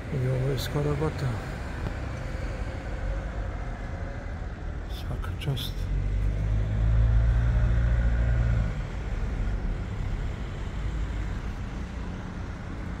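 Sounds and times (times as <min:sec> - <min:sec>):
street noise: 0:00.0 - 0:13.0
vehicle engine humming: 0:00.0 - 0:13.0.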